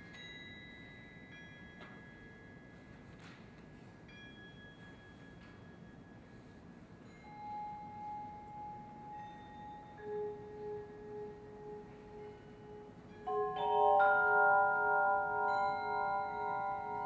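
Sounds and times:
bell-like mallet notes: 7.1 - 17.0
pulsing low vibraphone note: 10.0 - 17.0.

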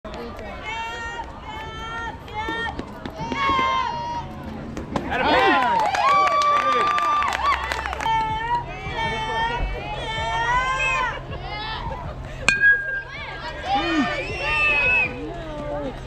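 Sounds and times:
high-pitched yelling and cheering: 5.2 - 12.1, 12.8 - 15.4
bat hitting ball: 12.5 - 13.1.

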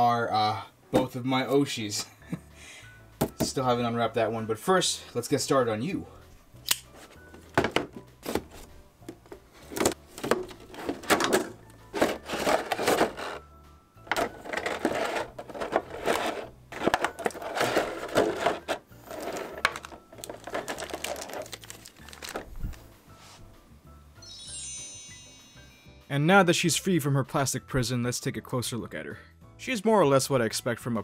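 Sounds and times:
background music: 0.0 - 31.0
plastic packaging crinkling: 14.2 - 22.8.

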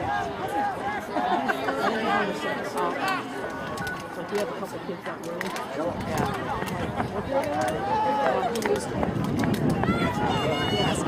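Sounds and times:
outdoor background noise: 0.0 - 11.0
spectators talking and calling out: 0.0 - 11.0.

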